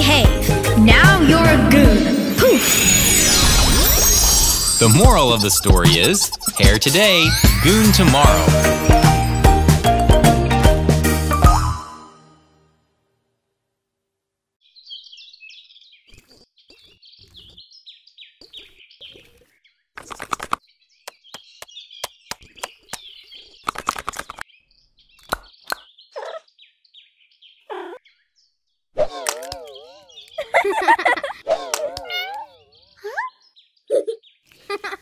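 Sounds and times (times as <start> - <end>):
cartoon birds chirping: 2.6 - 10.2, 18.3 - 26.7, 27.5 - 28.4, 29.0 - 35.0.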